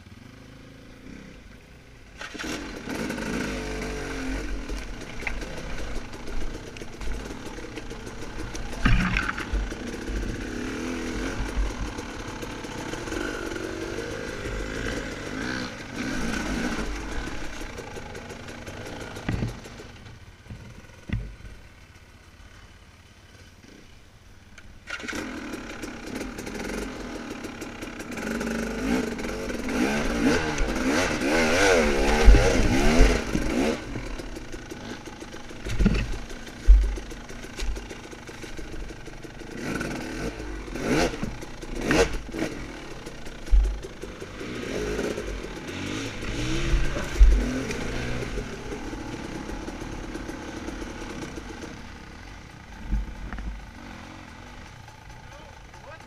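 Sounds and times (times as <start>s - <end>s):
dirt bike engine revving: 0.0s - 21.5s, 24.8s - 56.0s
bike striking rocks: 8.3s - 10.3s, 35.6s - 37.9s.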